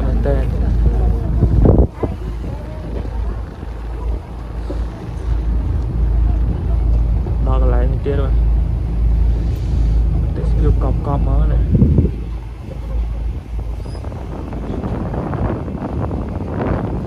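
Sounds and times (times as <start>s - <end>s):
boat engine rumbling: 0.0s - 17.0s.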